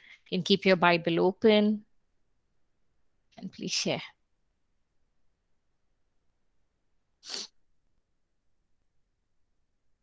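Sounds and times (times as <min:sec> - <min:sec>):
short sharp hissy burst: 0:07.2 - 0:07.5.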